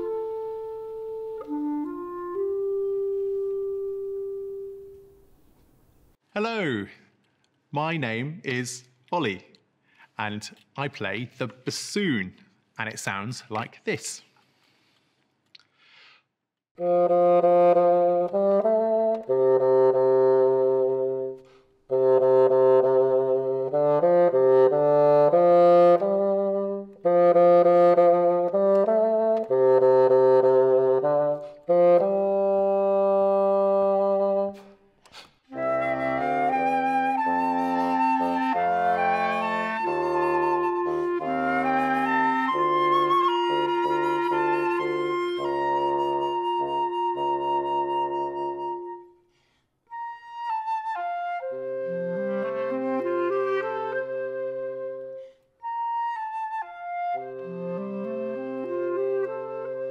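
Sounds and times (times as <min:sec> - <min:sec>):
woodwind trio with high flute melody: 0:00.0 - 0:05.2, 0:16.8 - 0:59.9
solo bassoon playing low phrases: 0:00.0 - 0:05.4, 0:16.8 - 0:34.8, 0:35.5 - 0:49.2, 0:49.9 - 0:59.9.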